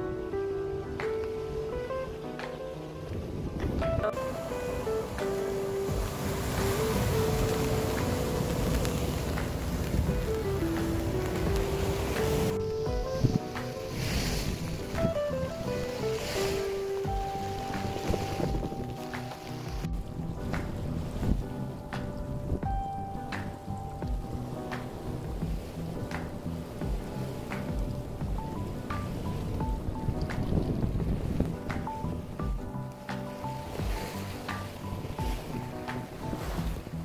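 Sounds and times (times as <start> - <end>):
background music melody: 0.0 - 37.0
sea surf: 0.0 - 37.0
wind buffeting microphone: 0.0 - 37.0.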